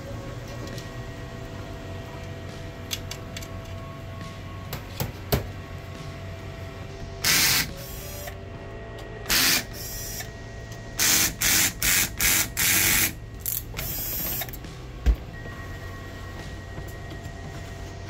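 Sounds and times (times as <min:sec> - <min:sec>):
cordless drill spinning: 0:09.3 - 0:10.0.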